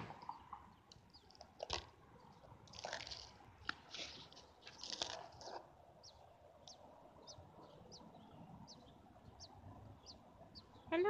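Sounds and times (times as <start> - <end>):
nestlings peeping: 0.2 - 2.9, 4.2 - 11.0.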